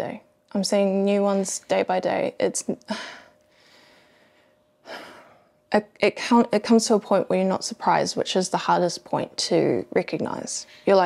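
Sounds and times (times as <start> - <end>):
intake of breath: 3.0 - 5.5.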